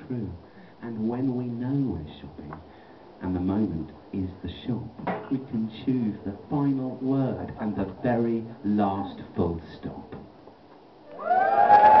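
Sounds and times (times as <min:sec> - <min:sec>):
audience cheering and whooping: 0:11.1 - 0:12.0.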